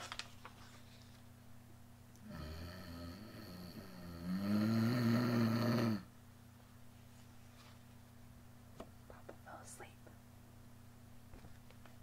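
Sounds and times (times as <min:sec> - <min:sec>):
woman imitating snoring: 0:02.2 - 0:06.1.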